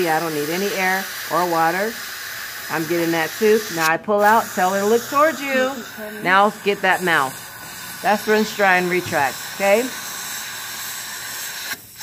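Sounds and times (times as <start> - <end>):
dental suction hissing: 0.0 - 12.0.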